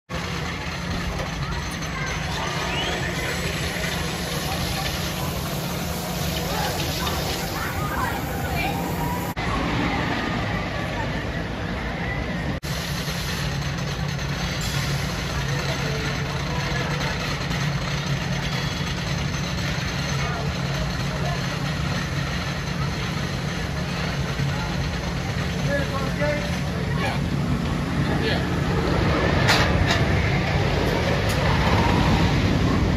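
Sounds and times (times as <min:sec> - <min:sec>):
people talking: 0:00.2 - 0:12.6, 0:15.2 - 0:18.6, 0:20.0 - 0:29.2.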